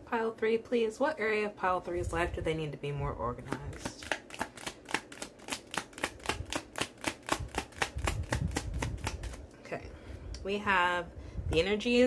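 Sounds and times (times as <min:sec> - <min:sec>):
cards being shuffled: 0:03.4 - 0:09.4.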